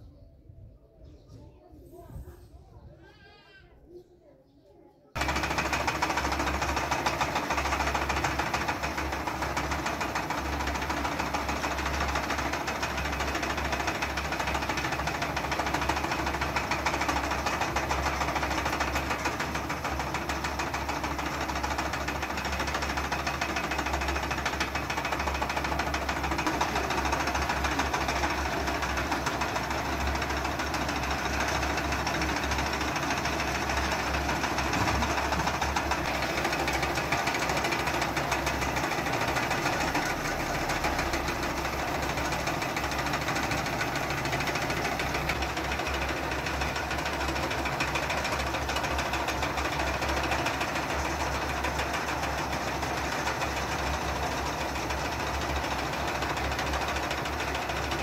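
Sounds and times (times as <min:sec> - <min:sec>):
spindles rattling: 0:05.2 - 0:58.0
spinning machine motor hum: 0:05.2 - 0:58.0.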